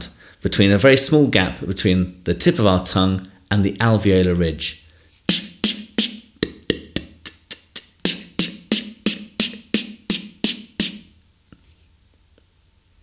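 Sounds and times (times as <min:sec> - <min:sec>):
beatboxed snare hits: 0:05.3 - 0:11.2.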